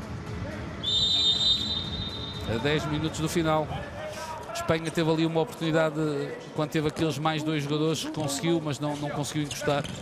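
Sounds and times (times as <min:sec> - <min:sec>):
referee's whistle long note: 0:00.8 - 0:02.5.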